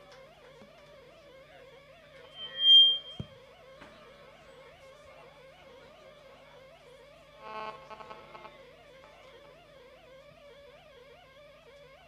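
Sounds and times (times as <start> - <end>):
faint wavering drone: 2.2 - 3.2
high whistle-like tone: 2.2 - 3.3.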